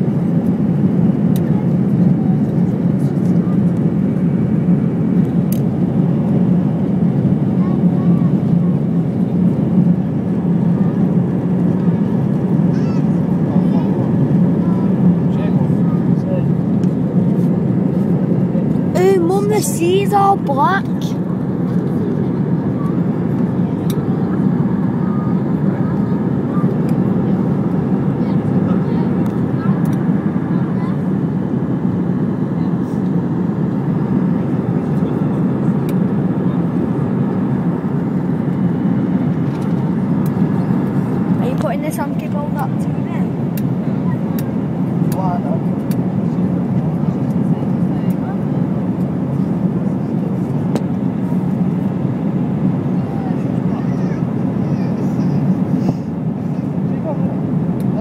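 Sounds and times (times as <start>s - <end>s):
jet engine roar in cabin: 0.0s - 58.0s.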